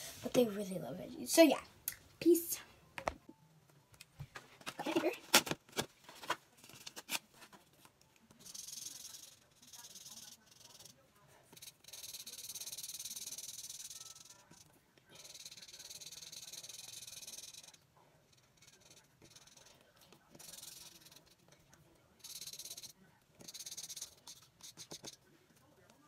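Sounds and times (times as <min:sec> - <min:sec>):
marker scribbling on paper: 0:08.3 - 0:25.6.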